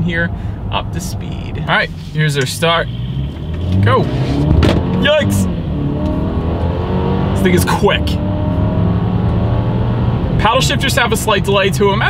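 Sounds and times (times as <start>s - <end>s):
car engine accelerating hard: 2.3s - 12.0s.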